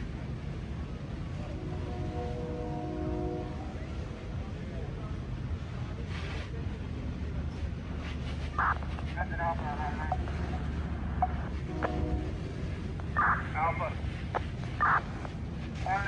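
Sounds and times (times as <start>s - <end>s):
fire truck engines rumbling: 0.0s - 16.0s
indistinct voices: 8.5s - 16.0s.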